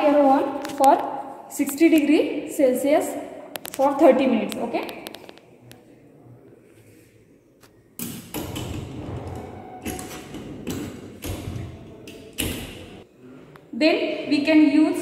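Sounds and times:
latch handle rattling: 0:08.0 - 0:13.0
metal oven door shutting: 0:08.4 - 0:12.9.

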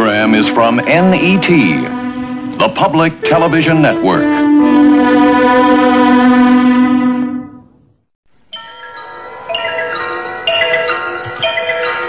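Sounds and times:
held musical chord: 0:00.0 - 0:07.7
bell-like chime chord: 0:08.5 - 0:12.0.

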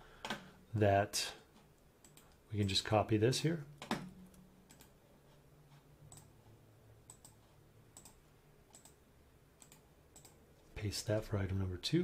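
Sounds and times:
low steady hum: 0:00.0 - 0:12.0
computer mouse clicks: 0:02.0 - 0:02.8, 0:03.8 - 0:05.0, 0:06.1 - 0:06.3, 0:07.0 - 0:09.0, 0:09.6 - 0:10.4.

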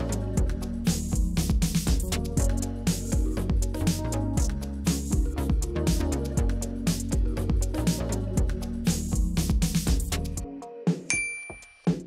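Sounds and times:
upbeat background music: 0:00.0 - 0:12.0
bright electronic ding: 0:11.1 - 0:12.0.

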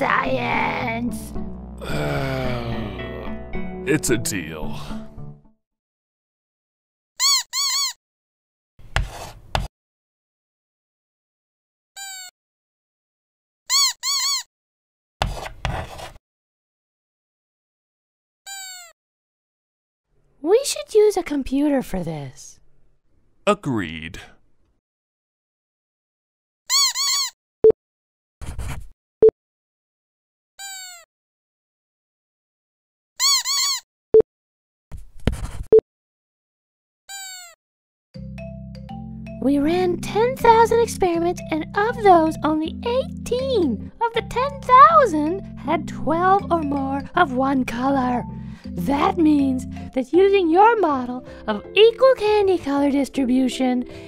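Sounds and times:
scratchy noise with click: 0:34.9 - 0:35.7.

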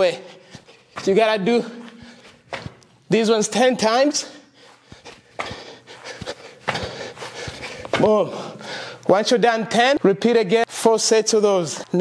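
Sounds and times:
footfalls on artificial turf: 0:00.0 - 0:08.4.

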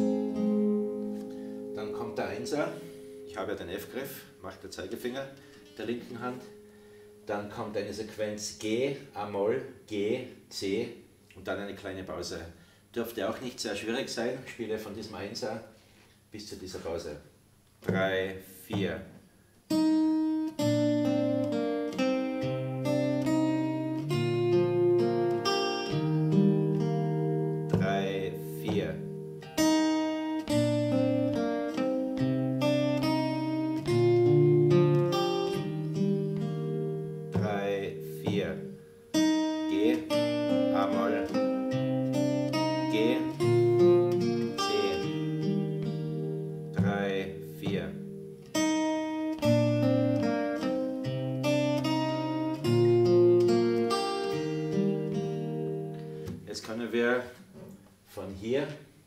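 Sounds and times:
fingerstyle acoustic guitar: 0:00.0 - 0:07.8, 0:17.8 - 0:18.1, 0:19.7 - 0:56.6.

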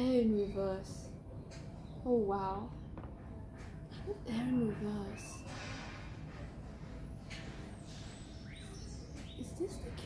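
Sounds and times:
small birds chirping: 0:00.0 - 0:05.8, 0:07.2 - 0:10.0
steady outdoor background hiss: 0:00.0 - 0:10.0.

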